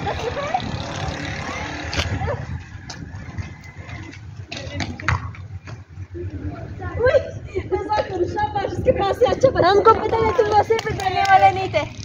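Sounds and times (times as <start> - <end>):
wind noise on microphone: 0.0 - 12.0.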